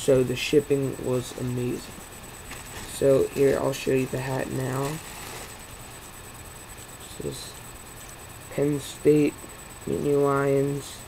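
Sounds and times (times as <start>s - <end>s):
microphone background hiss: 0.0s - 11.0s.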